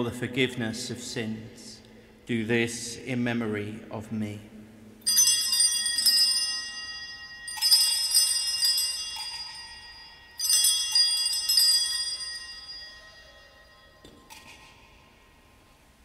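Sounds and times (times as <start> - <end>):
small bells pealing: 5.0 - 15.5.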